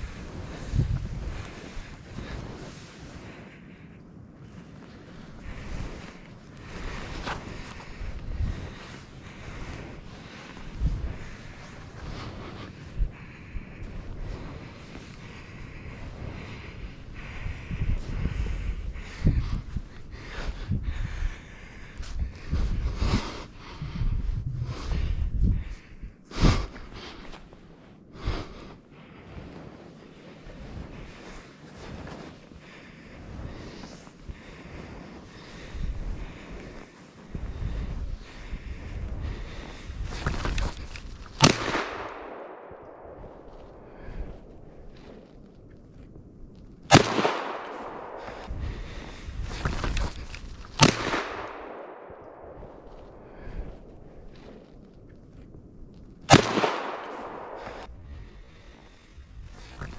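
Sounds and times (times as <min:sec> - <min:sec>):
shotgun shots echoing: 0:41.4 - 0:43.5, 0:46.9 - 0:48.5, 0:50.8 - 0:53.2, 0:56.3 - 0:57.9.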